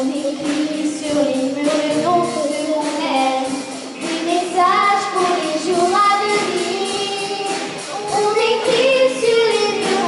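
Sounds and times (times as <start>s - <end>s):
girls singing pop song: 0.0s - 10.0s
live band playing: 0.0s - 10.0s.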